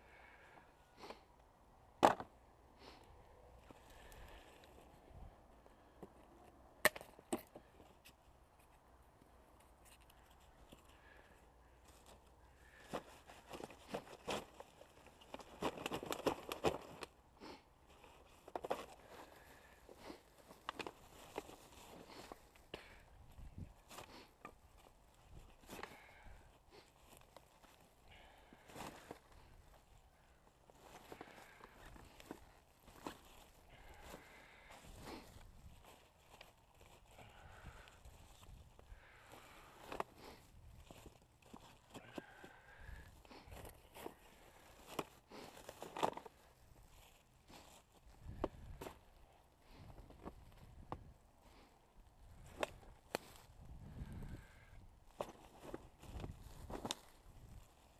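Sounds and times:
dry grass crackling: 2.8 - 57.9.

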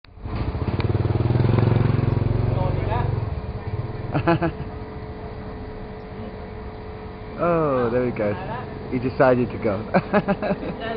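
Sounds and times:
vehicle engine passing: 0.2 - 10.0.

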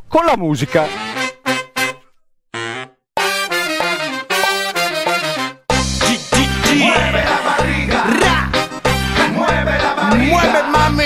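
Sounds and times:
brass stabs: 0.7 - 9.4.

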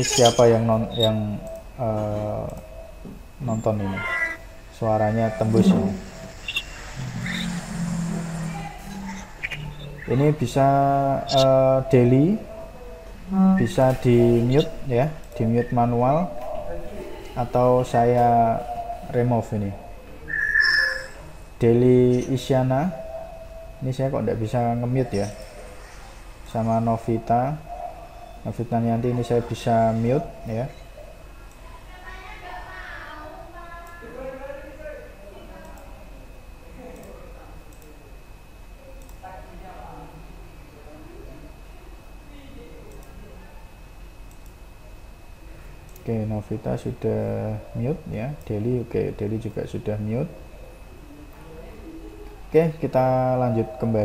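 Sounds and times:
low held musical tones: 0.0 - 31.4
steady high whine: 0.0 - 54.0.

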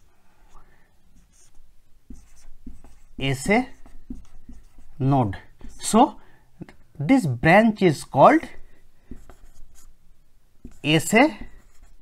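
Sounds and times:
marker writing on whiteboard: 1.2 - 6.8, 8.4 - 10.0, 10.6 - 12.0.

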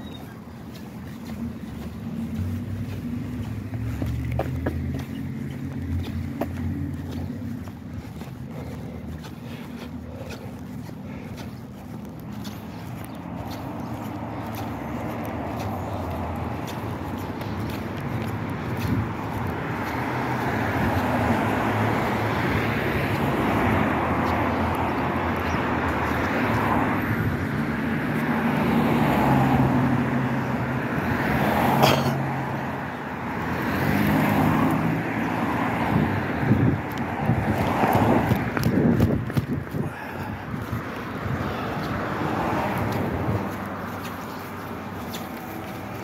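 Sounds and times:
traffic rumble: 0.0 - 46.0.

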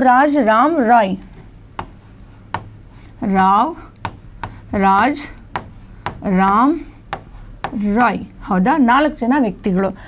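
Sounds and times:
pen tapping and scratching on board: 1.3 - 8.2.

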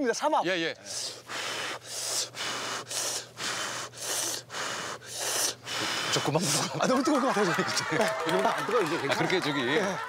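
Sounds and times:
man blowing breathy puffs: 0.9 - 6.3.

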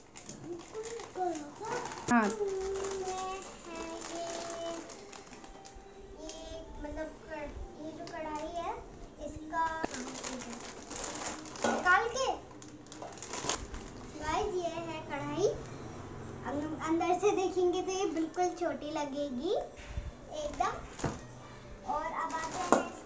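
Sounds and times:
plastic wrap rustling: 0.0 - 7.0, 7.9 - 8.8, 9.4 - 15.5, 20.3 - 23.0
child talking: 0.4 - 4.9, 6.2 - 10.8, 11.8 - 12.5, 14.2 - 15.7, 16.4 - 20.9, 21.8 - 23.0.

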